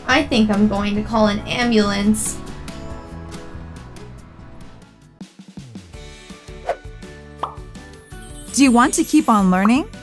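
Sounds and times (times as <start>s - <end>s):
background music: 0.0s - 10.0s
rising cartoon pop effects: 7.4s - 7.7s.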